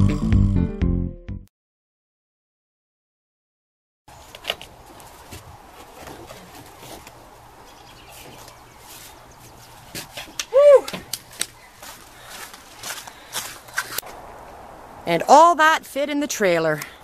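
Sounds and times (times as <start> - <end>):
footsteps: 8.1 - 14.6
woman whooping: 10.5 - 11.0.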